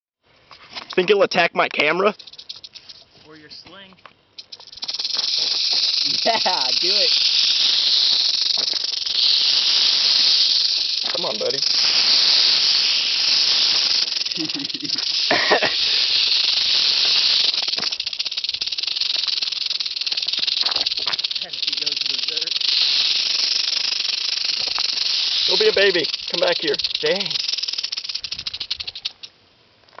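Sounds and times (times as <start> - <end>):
rattlesnake tail rattling: 1.6 - 3.2, 4.3 - 30.0.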